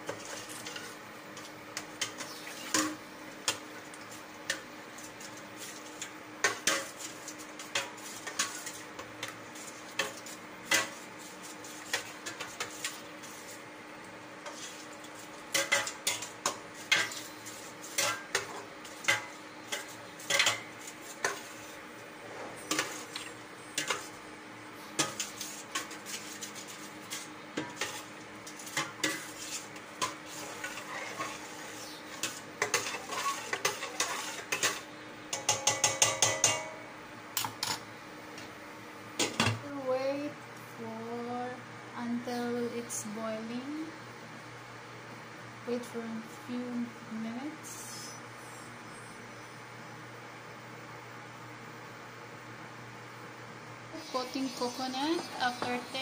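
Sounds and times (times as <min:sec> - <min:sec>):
metal ladle clinking in a pot: 0:32.7 - 0:36.7.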